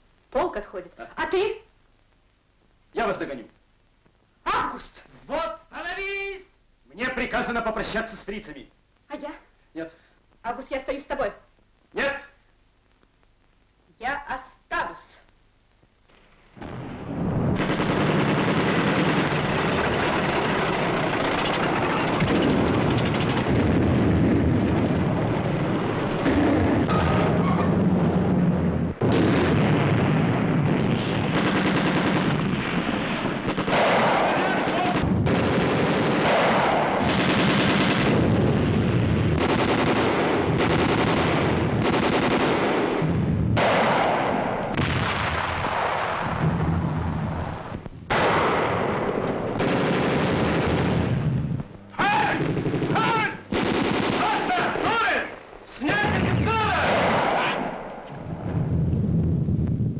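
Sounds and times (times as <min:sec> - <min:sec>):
rifle and machine gun fire: 0:16.6 - 0:58.5.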